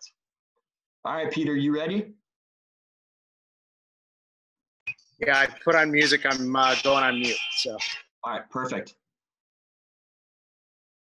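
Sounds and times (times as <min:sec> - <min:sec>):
man's voice: 0:01.1 - 0:02.0, 0:05.2 - 0:08.9.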